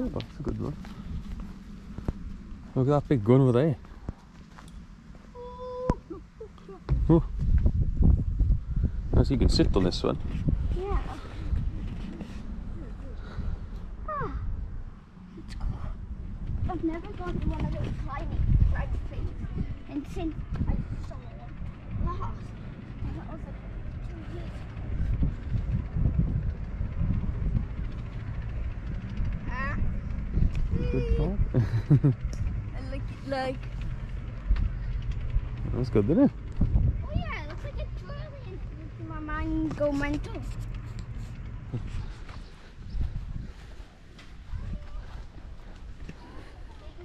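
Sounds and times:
low rumble: 0.0s - 47.0s
wind buffeting microphone: 0.0s - 47.0s.

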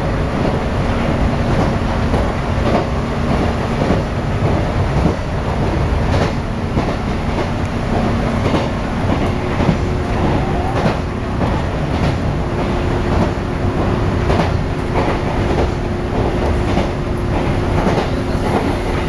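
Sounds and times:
train running rumble: 0.0s - 19.0s.

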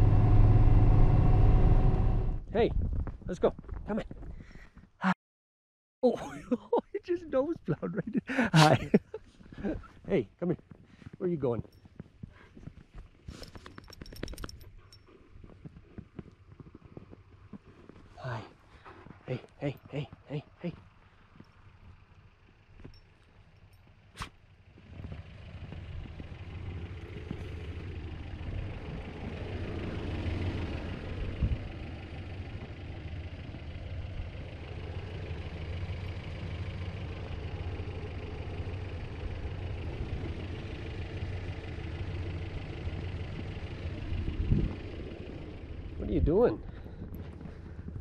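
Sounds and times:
truck engine running: 0.0s - 2.5s, 7.0s - 48.0s.

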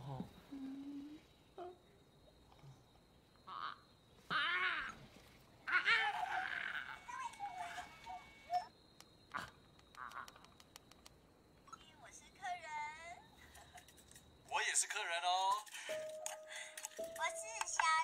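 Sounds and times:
faint ticks: 9.0s - 11.9s.

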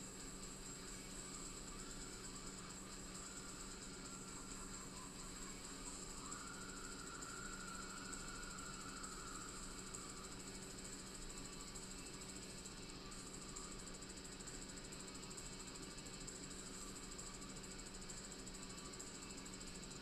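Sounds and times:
electrical whine: 0.0s - 20.0s.

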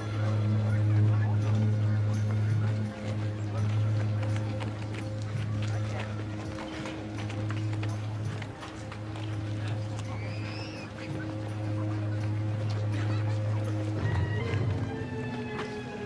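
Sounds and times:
crowd murmur: 0.0s - 16.0s
hoof clops and knocks: 0.0s - 16.0s
low musical drone: 0.0s - 16.0s.

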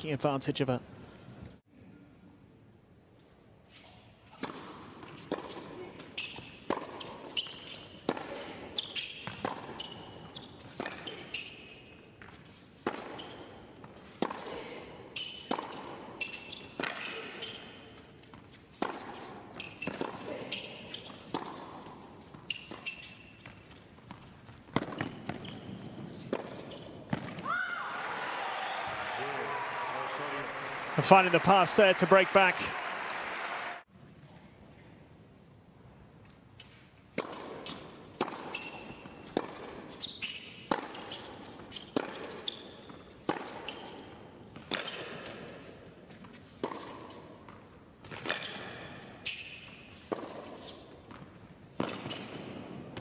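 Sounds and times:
shoe squeaks on court: 2.2s - 14.2s, 15.1s - 27.2s, 37.6s - 45.8s, 48.1s - 51.2s, 51.8s - 52.6s
tennis ball bounces: 4.3s - 11.5s, 12.2s - 27.5s, 36.6s - 53.0s
crowd applause: 27.9s - 33.8s
tennis racket strikes: 36.6s - 53.0s.

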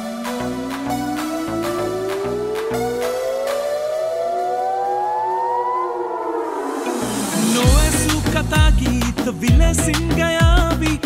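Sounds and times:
synth riser climbing in pitch: 0.0s - 7.8s.

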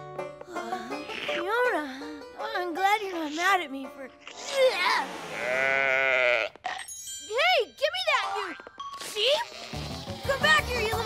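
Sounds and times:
cartoon sheep bleating: 4.2s - 6.6s.

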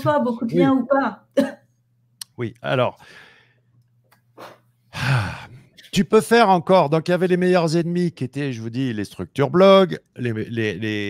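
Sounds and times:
breathy sigh: 4.4s - 5.6s.

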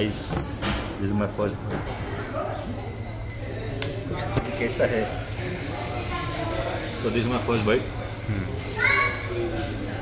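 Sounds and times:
restaurant dining room hum: 0.0s - 10.0s.

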